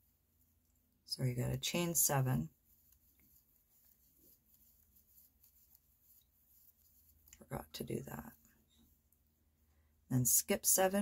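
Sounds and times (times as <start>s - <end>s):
yarn rustling on crochet hook: 0.0s - 11.0s.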